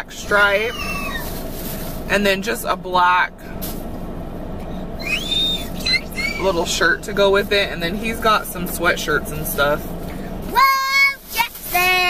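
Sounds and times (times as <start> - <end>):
steady low hum: 0.0 - 12.0
toddler squealing: 0.7 - 1.4, 5.0 - 6.6.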